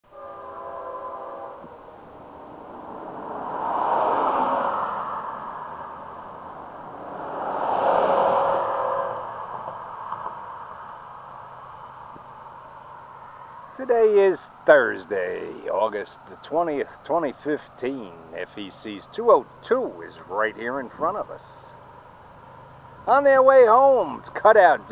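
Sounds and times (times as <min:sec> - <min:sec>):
distant locomotive horn: 0:00.0 - 0:02.4, 0:07.4 - 0:10.5
cars passing by: 0:01.3 - 0:24.9.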